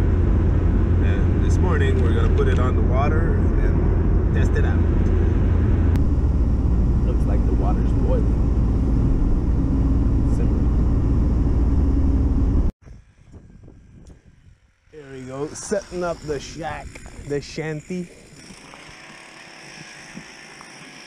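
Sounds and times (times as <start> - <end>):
road and engine rumble in car: 0.0 - 12.8
faint outdoor background: 0.0 - 21.0.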